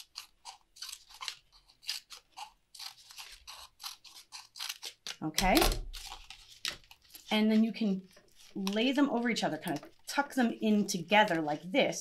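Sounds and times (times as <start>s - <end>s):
scissors snipping paper plate: 0.0s - 7.3s.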